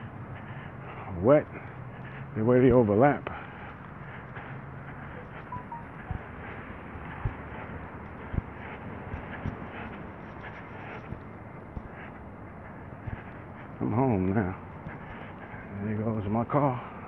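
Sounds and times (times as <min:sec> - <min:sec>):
outdoor background hiss: 0:00.0 - 0:17.0
footsteps on asphalt: 0:00.1 - 0:17.0.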